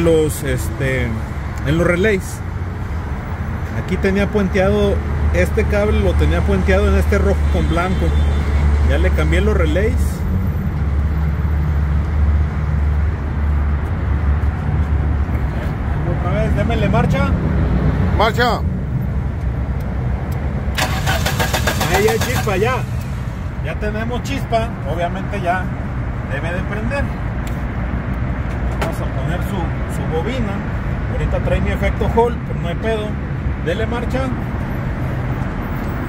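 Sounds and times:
vehicle engine idling: 20.7s - 23.7s.

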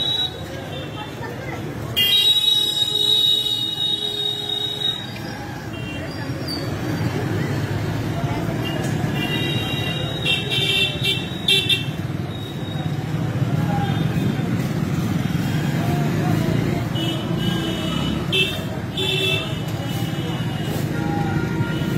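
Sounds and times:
traffic: 0.0s - 21.9s
voices: 0.0s - 21.9s.

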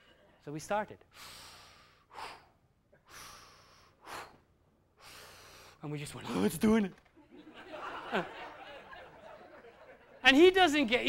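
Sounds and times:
man breathing rhythmically: 1.1s - 5.8s.

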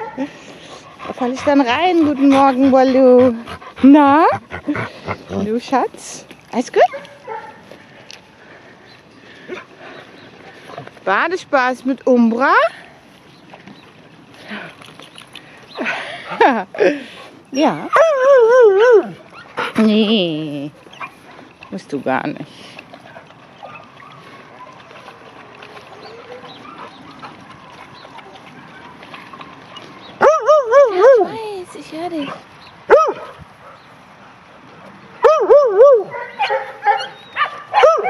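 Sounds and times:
dog yelping: 17.6s - 19.5s, 30.2s - 31.4s, 32.9s - 33.3s, 35.2s - 38.0s.

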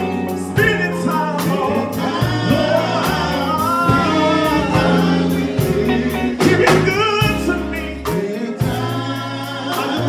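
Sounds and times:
drum kit: 0.0s - 10.0s
electric bass guitar: 0.0s - 10.0s
men's vocal quartet singing: 0.0s - 10.0s.

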